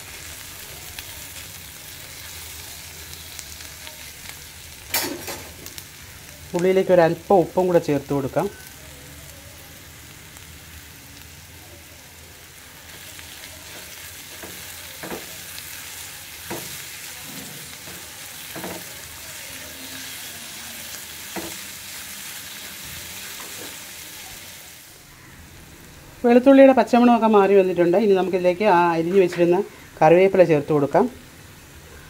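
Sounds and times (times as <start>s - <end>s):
onions sizzling in hot oil: 0.0s - 32.0s.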